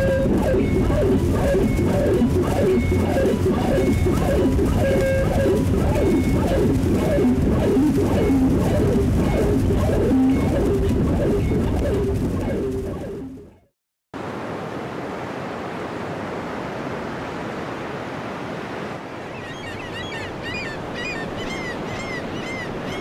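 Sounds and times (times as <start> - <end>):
music with repeating short notes: 0.0 - 13.7.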